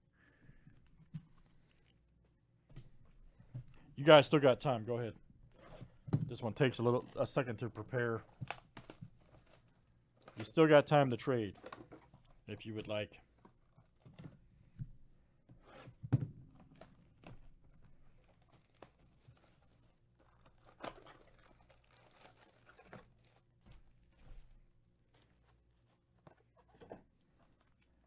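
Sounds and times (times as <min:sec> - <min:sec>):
cardboard box rustling and tearing: 0:18.2 - 0:24.5.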